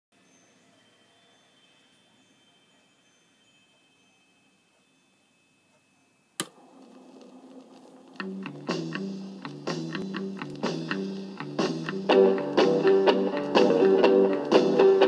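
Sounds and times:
faint sustained music tones: 0.2s - 15.0s
record groove hiss: 0.2s - 15.0s
sharp click: 6.4s - 6.6s.

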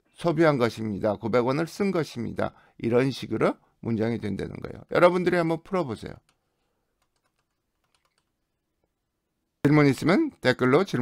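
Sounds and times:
faint computer clicks: 6.2s - 8.4s.

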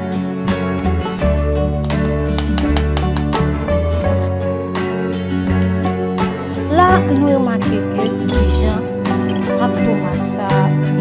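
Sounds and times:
background music: 0.0s - 11.0s
metal spoon clinking ceramic bowl: 6.9s - 9.6s.

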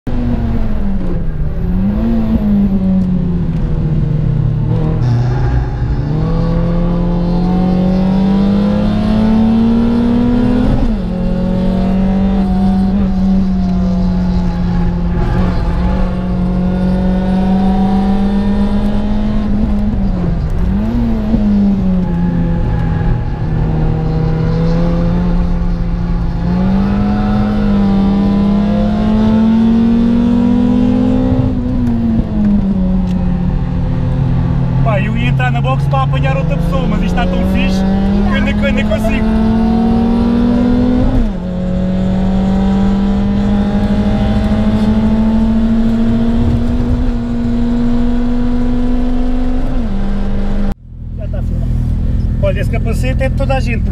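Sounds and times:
car engine revving: 0.1s - 53.9s
road and tyre rumble: 0.1s - 53.9s.

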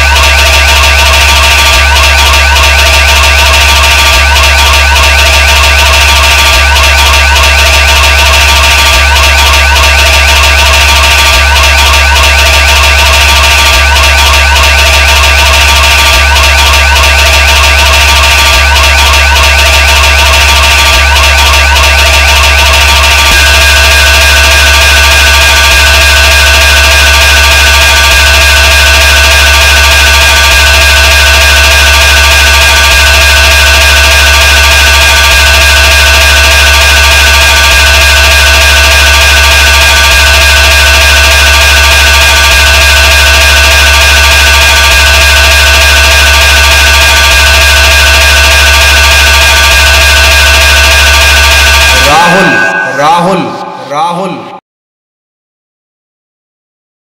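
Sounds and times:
hard trance music: 0.0s - 54.6s.

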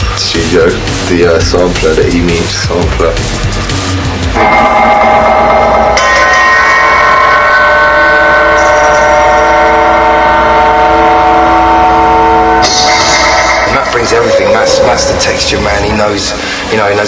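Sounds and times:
sampler chord held: 4.2s - 16.6s.

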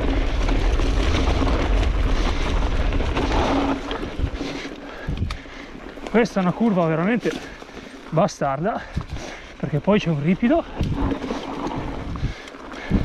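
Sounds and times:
wind rushing over microphone: 0.0s - 5.4s, 10.6s - 13.0s
bike rattling: 0.0s - 13.0s
tyres rolling on dirt and leaves: 0.0s - 13.0s.

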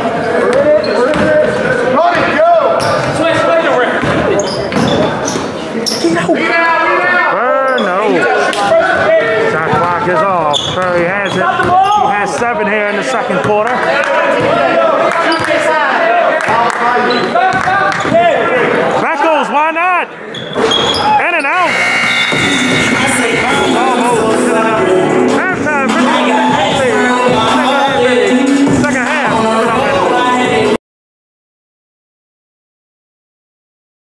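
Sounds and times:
players calling out: 0.2s - 30.1s
sneakers squeaking: 2.7s - 6.2s, 9.7s - 12.3s, 15.3s - 15.6s, 17.0s - 18.2s, 20.3s - 24.4s.

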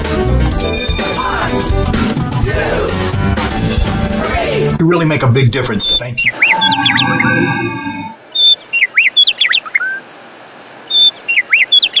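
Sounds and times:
songbird singing: 6.2s - 10.0s, 10.8s - 12.0s.

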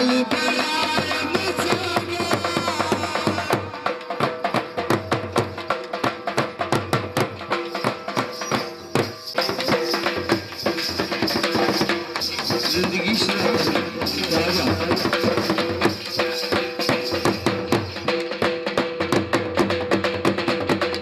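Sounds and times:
fast dhol drum beat: 0.0s - 21.0s.

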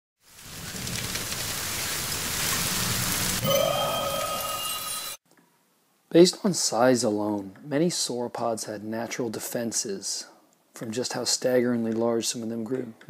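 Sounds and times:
rushing rain-like noise: 0.2s - 4.4s
ringing tones: 3.4s - 5.2s
rising note: 3.4s - 5.2s.

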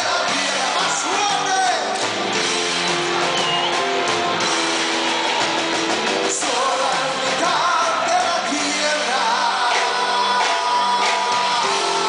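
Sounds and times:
person singing: 0.0s - 1.9s, 6.2s - 12.0s
electric guitar: 0.0s - 12.0s
keyboards: 0.0s - 12.0s
live band music: 0.0s - 12.0s.

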